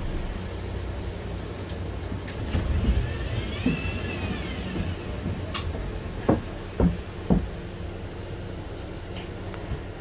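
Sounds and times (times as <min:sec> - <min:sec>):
bus engine idling: 0:00.0 - 0:10.0.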